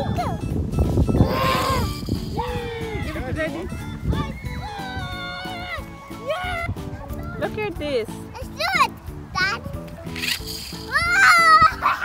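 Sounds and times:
background music: 0.0 - 12.0
children squealing: 1.2 - 3.4, 4.1 - 6.7, 10.8 - 12.0.

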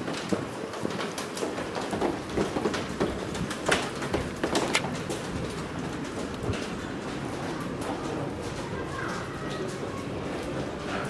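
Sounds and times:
footsteps on wet stone: 1.0 - 6.6.

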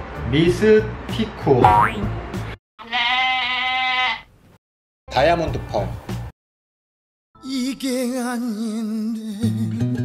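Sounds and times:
sheep bleat: 2.8 - 4.3.

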